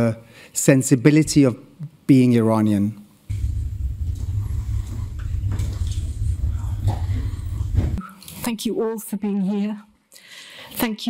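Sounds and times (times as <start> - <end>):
low rumble of room noise: 3.3 - 8.0.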